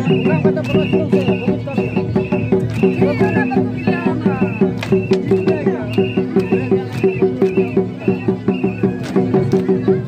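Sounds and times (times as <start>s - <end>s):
hand drum rhythm: 0.0s - 10.0s.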